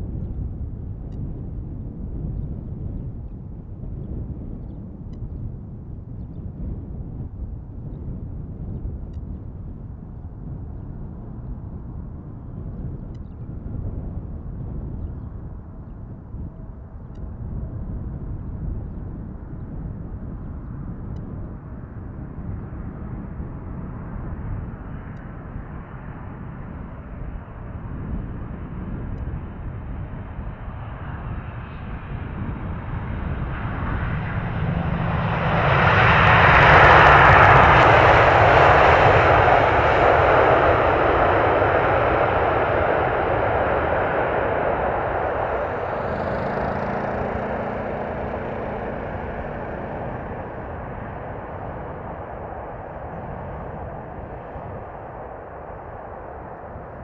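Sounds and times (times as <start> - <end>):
jet aircraft landing: 33.0 - 53.6.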